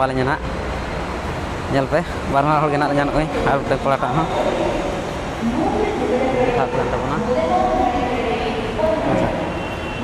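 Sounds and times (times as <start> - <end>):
metro train rumbling: 0.0 - 10.0.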